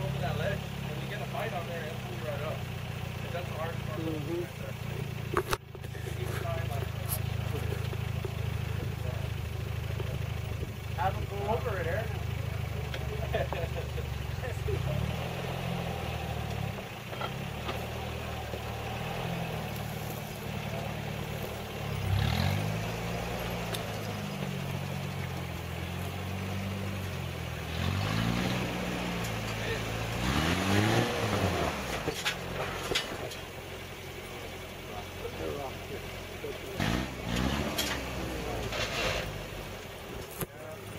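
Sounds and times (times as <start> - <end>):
engine idling and revving: 0.0 - 40.9.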